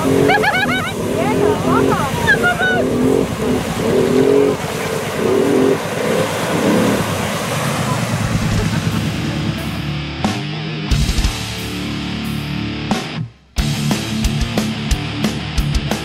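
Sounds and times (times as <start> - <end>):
people yelling and whooping: 0.0 - 3.8
atv engine revving: 0.0 - 10.4.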